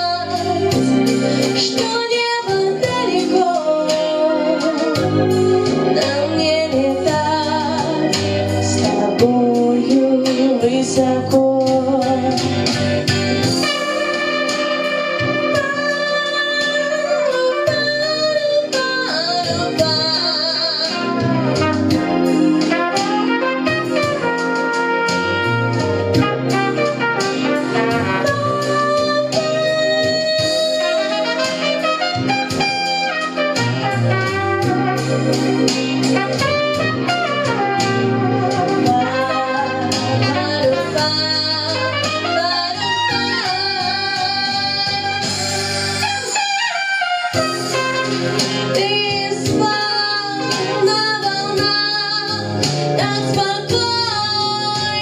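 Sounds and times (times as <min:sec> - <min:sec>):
slow blues backing track: 0:00.0 - 0:55.0.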